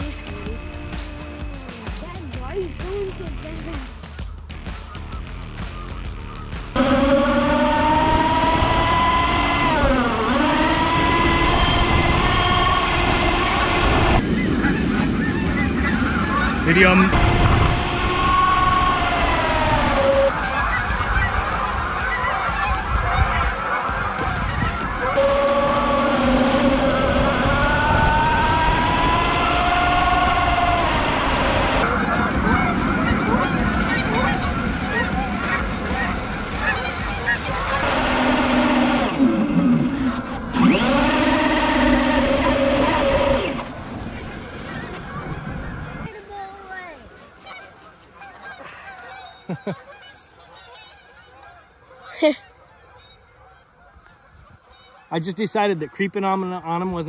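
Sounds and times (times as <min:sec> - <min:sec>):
flock of geese honking: 0:00.0 - 0:57.0.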